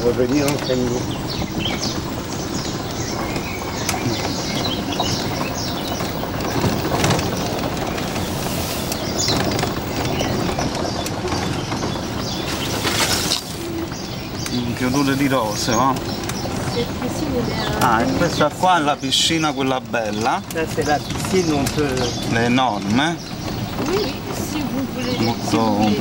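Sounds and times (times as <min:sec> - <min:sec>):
small birds chirping: 0:00.0 - 0:26.0
steady background hum: 0:00.0 - 0:26.0.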